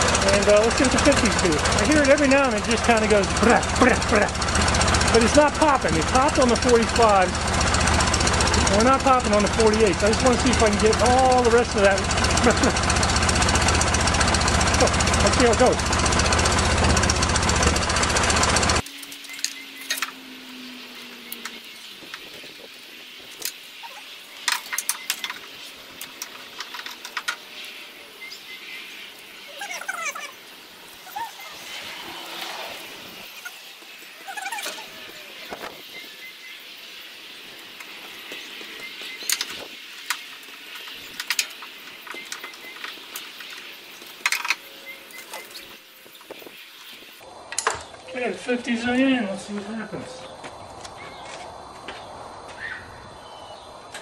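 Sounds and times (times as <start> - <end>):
car engine idling: 0.0 - 47.4.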